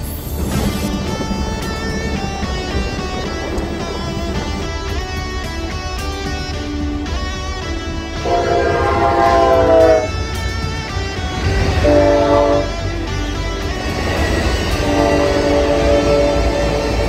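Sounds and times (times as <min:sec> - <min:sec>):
train rumbling past: 0:00.0 - 0:17.0
train horn blasts: 0:08.2 - 0:10.3, 0:11.5 - 0:13.4, 0:14.5 - 0:17.0.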